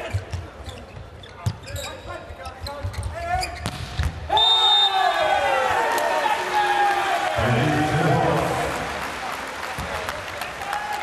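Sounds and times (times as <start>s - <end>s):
voices in a hall: 0.0s - 3.6s
high whistle-like tone: 4.3s - 5.0s.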